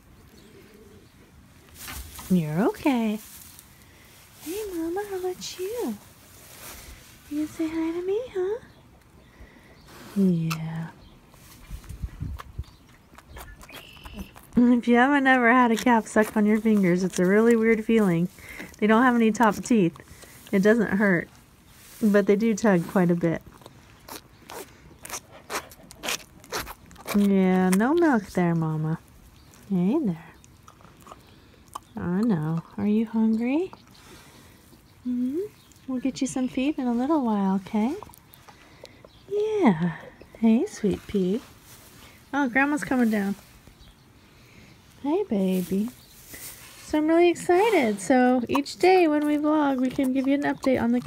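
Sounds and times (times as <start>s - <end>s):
calf sucking on fingers: 11.8s - 14.6s, 23.5s - 28.2s.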